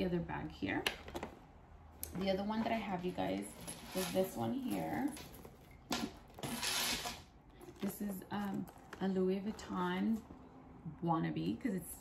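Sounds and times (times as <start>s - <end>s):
purse rustling: 1.0s - 10.9s
bag and strap rustling: 2.1s - 10.5s.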